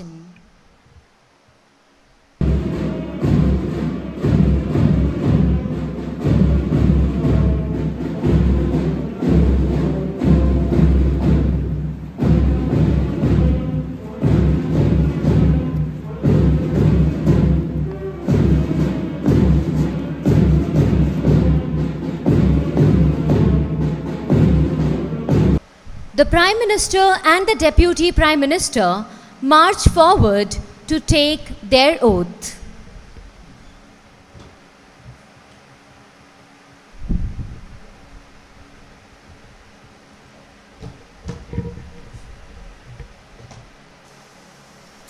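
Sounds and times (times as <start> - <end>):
snare and bass drums marching beat: 2.4 - 25.6.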